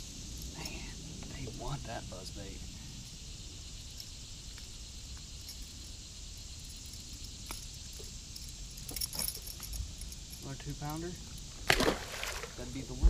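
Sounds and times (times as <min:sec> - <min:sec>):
light metallic clicks and jingles: 0:00.0 - 0:11.6
faint high hiss: 0:00.0 - 0:13.0.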